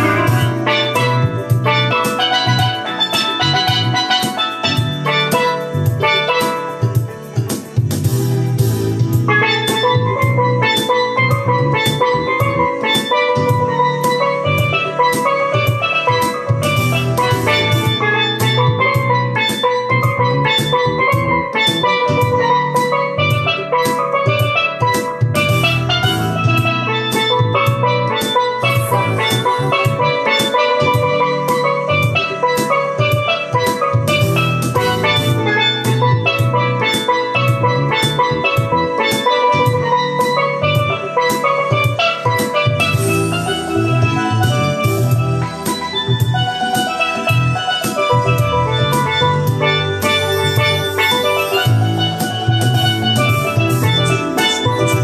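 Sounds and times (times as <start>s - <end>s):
backing track with bass and drums: 0.0s - 55.0s
steel pan melody: 0.0s - 55.0s.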